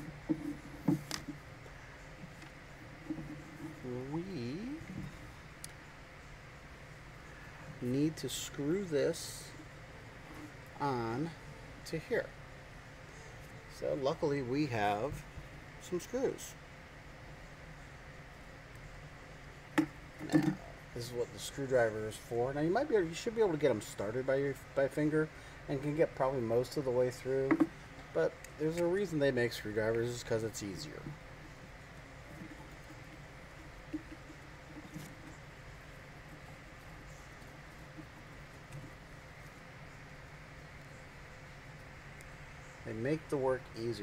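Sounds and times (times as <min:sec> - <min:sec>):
low room hum: 0:00.0 - 0:44.0.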